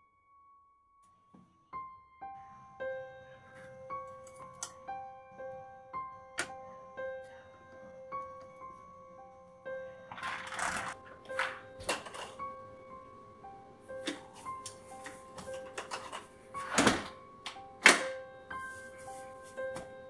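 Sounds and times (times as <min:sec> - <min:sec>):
soft keyboard music: 0:00.4 - 0:20.0
door opening: 0:15.4 - 0:18.1.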